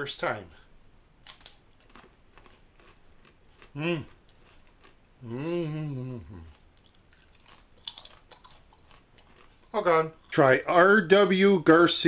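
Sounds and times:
tortilla chip crunching: 1.2 - 5.0, 6.5 - 9.9.

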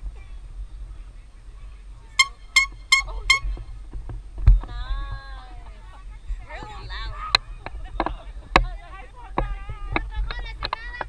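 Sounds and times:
short high honks: 2.1 - 3.8
wavering call falling in pitch: 2.2 - 3.7.

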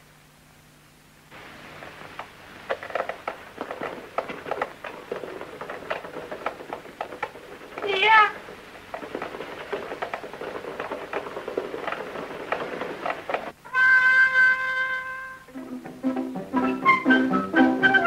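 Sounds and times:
old film soundtrack crackle: 0.8 - 18.0.

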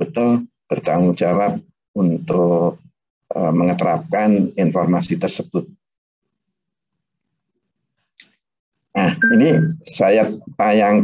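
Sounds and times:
man speaking: 0.0 - 5.8, 9.0 - 11.0.

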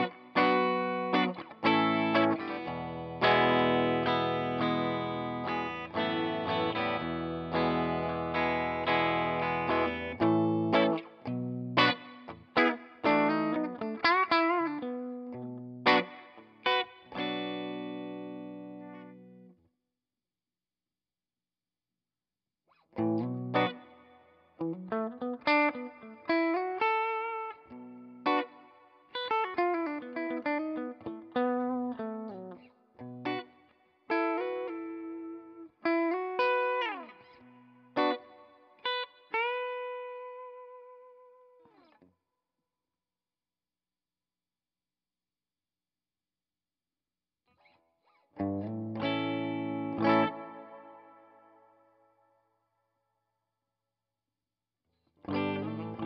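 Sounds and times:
electric guitar with reverb: 0.0 - 19.6, 22.9 - 42.1, 47.5 - 52.5, 55.2 - 56.0.

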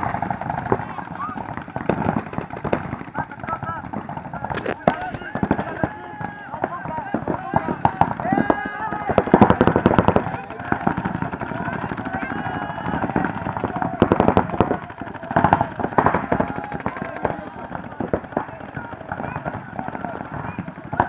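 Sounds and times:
paintball markers firing: 0.0 - 21.0
people shouting: 4.7 - 21.0.

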